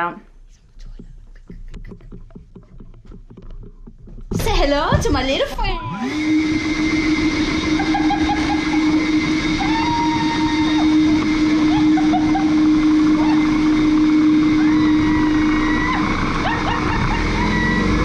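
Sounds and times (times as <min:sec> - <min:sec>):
leaf blower running: 0:05.5 - 0:18.0.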